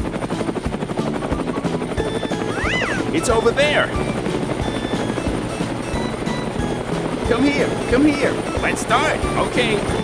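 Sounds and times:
background music: 0.0 - 10.0
helicopter rotor and engine: 0.0 - 10.0.

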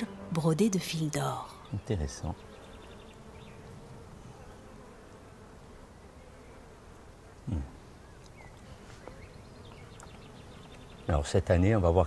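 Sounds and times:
flying insect buzzing: 0.0 - 12.0.

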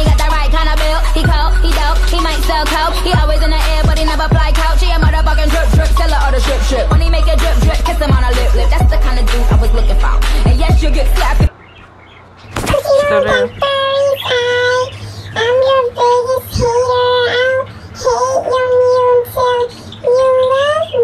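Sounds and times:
rap track: 0.0 - 11.5
high childlike singing voice: 12.7 - 21.0.

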